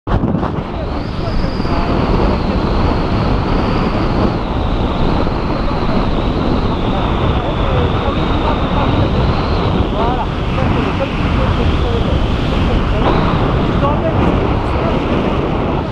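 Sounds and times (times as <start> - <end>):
strong wind buffeting microphone: 0.1 - 15.9
thin high whistle: 0.7 - 10.2.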